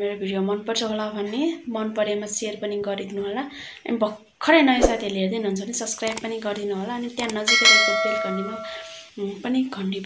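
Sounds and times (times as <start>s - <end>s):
bright multi-tone bell chime: 7.5s - 9.1s.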